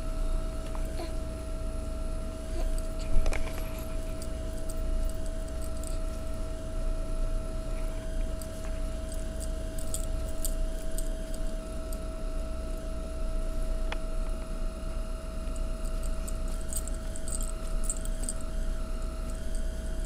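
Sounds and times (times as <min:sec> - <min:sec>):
steady low hum: 0:00.0 - 0:20.0
bracelet charms jingling: 0:02.5 - 0:06.4, 0:08.4 - 0:12.0, 0:15.6 - 0:18.4.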